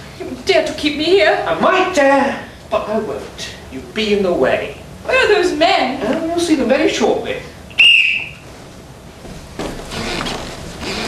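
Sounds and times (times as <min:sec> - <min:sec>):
shrill whistle blast: 0:07.7 - 0:08.4.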